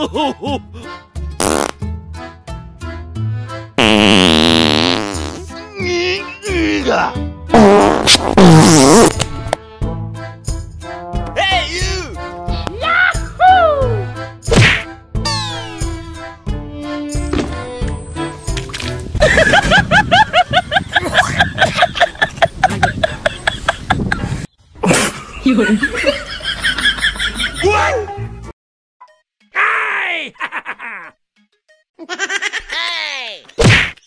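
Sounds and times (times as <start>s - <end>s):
playful comedy music: 0.0s - 23.5s, 24.8s - 34.0s
fart sound effect: 1.4s - 1.8s, 3.8s - 5.5s, 7.5s - 9.2s
background music with steady beat: 9.1s - 20.2s.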